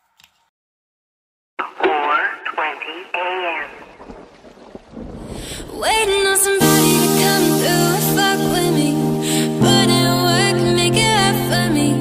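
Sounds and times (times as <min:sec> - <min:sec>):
person speaking through small speaker: 0:01.6 - 0:03.9.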